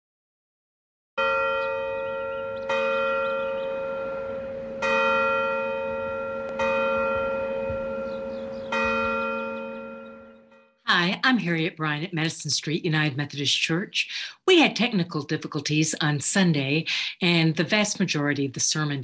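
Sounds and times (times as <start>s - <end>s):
church bell tolling: 1.2s - 10.8s.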